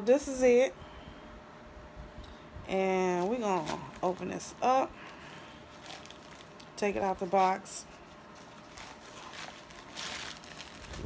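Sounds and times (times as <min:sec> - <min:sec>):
cardboard and paper rustling: 0:03.1 - 0:11.0.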